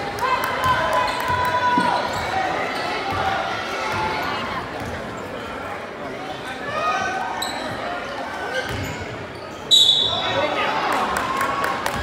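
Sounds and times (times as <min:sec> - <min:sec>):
shoe squeaks: 0:07.4 - 0:10.3
referee whistle blast: 0:09.7 - 0:10.3.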